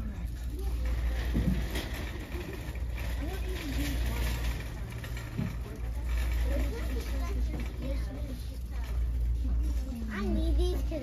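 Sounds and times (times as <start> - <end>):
people talking in background: 0.0 - 11.0
shopping cart rolling rumble: 0.0 - 11.0.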